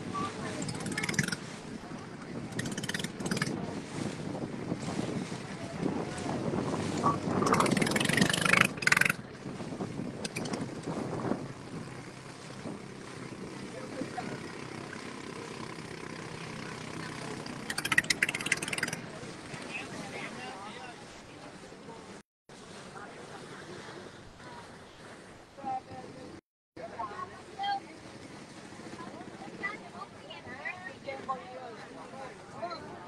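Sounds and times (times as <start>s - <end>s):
boat engine running: 0.0s - 33.0s.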